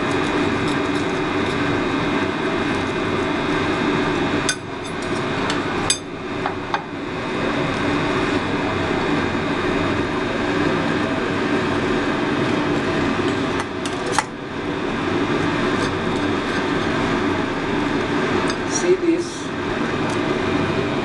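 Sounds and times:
steady mechanical hum: 0.0s - 21.0s.

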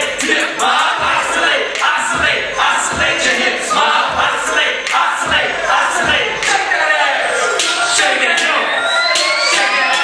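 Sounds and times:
kick drum: 0.0s - 4.6s, 5.2s - 6.5s
rapping over a beat: 0.0s - 10.0s.

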